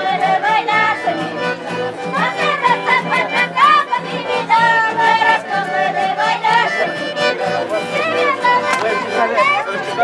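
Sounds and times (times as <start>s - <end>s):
band playing folk music: 0.0s - 10.0s
strummed acoustic guitars: 0.0s - 10.0s.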